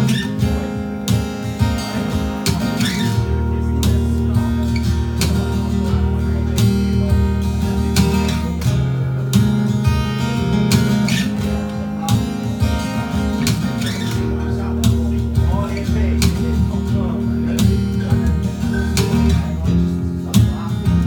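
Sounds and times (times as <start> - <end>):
electric guitar strummed: 0.0 - 21.0.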